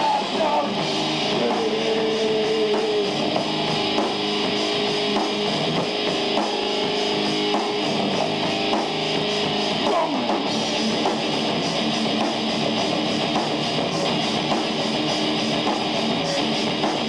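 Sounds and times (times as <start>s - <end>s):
heavy metal band playing: 0.0s - 17.0s.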